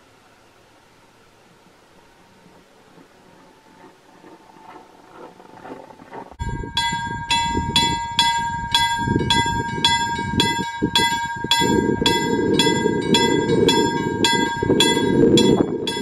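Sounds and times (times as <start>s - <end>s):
low rumble: 2.1s - 16.0s
level crossing warning bell: 6.4s - 16.0s.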